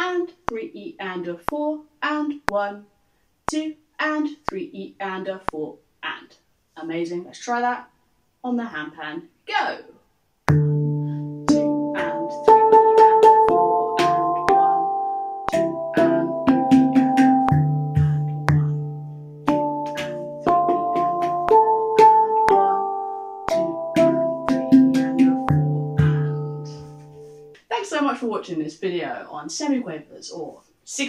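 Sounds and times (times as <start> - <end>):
handpan ringing notes: 10.5 - 27.5.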